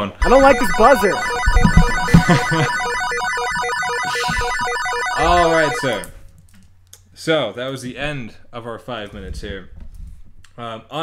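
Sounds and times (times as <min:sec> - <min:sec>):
electronic buzzer pulsing: 0:00.2 - 0:06.1.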